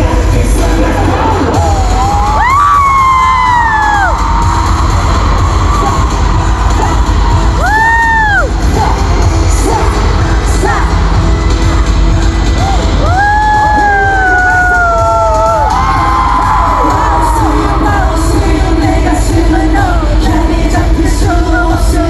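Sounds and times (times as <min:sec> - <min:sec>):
loud pop music through speakers: 0:00.0 - 0:22.0
crowd screaming: 0:01.4 - 0:08.8, 0:10.9 - 0:18.2.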